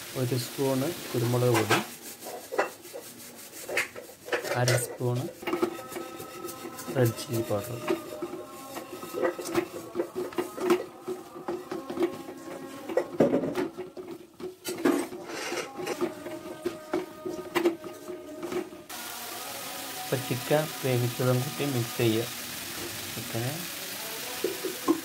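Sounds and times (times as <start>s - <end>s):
steady hiss: 0.0s - 2.4s, 18.9s - 25.0s
wooden spatula scraping a pan: 0.9s - 18.8s.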